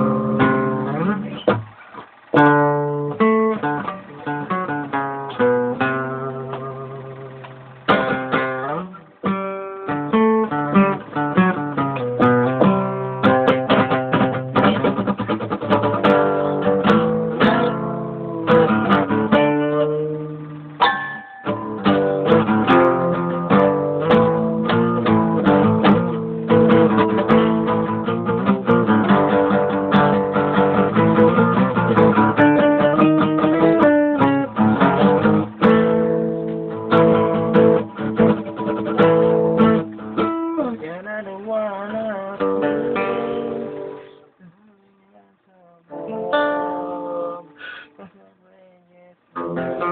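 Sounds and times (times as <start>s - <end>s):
acoustic guitar playing: 0.0s - 49.9s.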